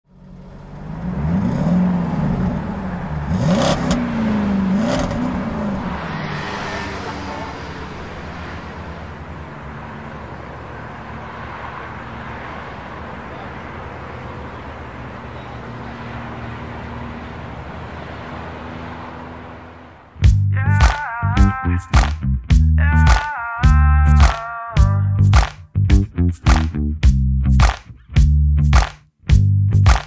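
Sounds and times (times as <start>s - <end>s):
traffic hum: 0.0s - 30.0s
vehicle passing: 0.1s - 23.4s
sharp sounds: 3.4s - 11.0s, 27.6s - 27.9s, 28.7s - 29.0s
loud voices: 20.6s - 22.2s, 22.8s - 25.5s.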